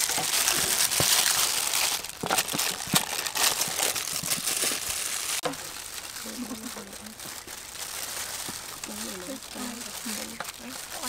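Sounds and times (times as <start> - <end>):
plastic gloves crinkling: 0.0 - 11.0.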